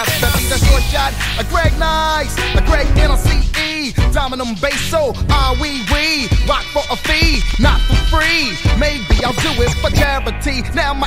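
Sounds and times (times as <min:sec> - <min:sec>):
rapping over heavy bass beat: 0:00.0 - 0:11.0.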